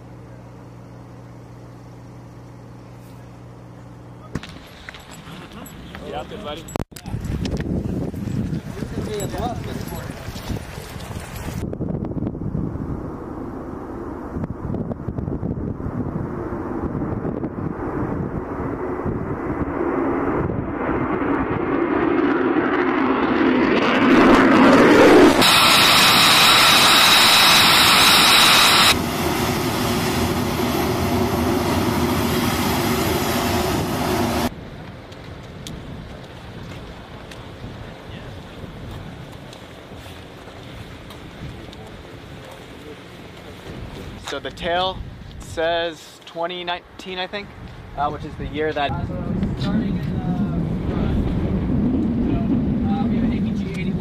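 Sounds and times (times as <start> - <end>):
jet engine roar with high whine: 12.3 - 44.6, 48.2 - 54.0.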